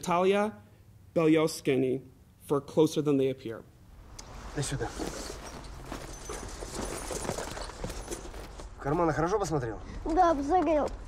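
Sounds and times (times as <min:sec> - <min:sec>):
faint rustling: 0:04.0 - 0:09.3.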